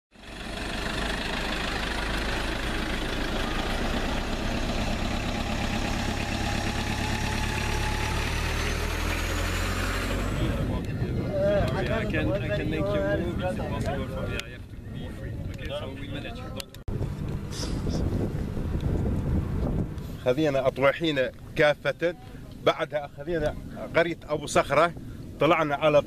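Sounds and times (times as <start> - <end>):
trucks driving past: 0.1 - 15.4, 16.9 - 26.0
man talking: 20.2 - 26.0.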